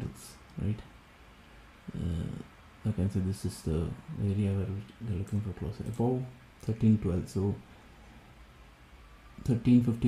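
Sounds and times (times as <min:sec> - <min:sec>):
man speaking: 0:00.0 - 0:00.9, 0:01.9 - 0:07.7, 0:09.4 - 0:10.0.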